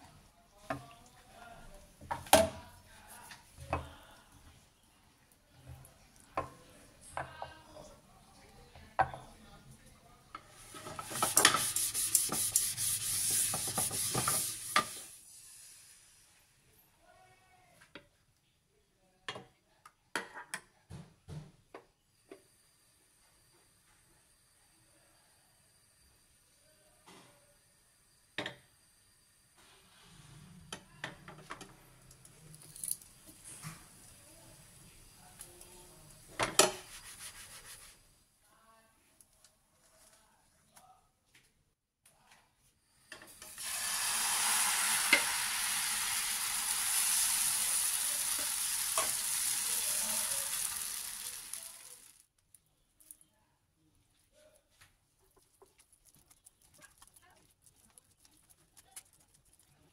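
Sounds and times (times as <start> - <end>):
spatula rubbing and tapping in a pan: 2.0 - 4.6, 10.4 - 15.2, 35.0 - 38.1, 44.6 - 52.1, 54.8 - 59.9.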